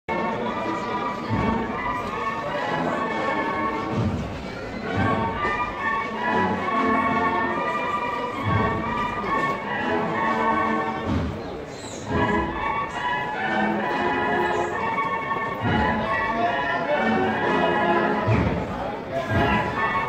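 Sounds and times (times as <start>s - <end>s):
bugles playing a melody: 0.1s - 20.0s.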